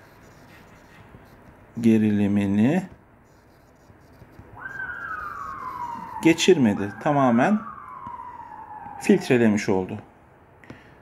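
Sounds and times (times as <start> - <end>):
high wailing tone: 4.5 - 9.7.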